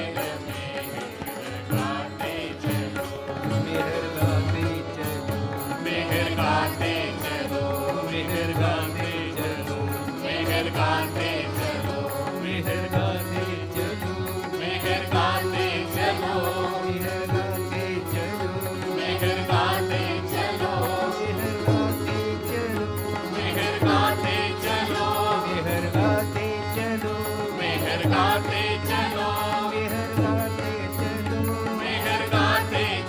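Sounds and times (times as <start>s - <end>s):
devotional chanting with music: 0.0s - 33.0s.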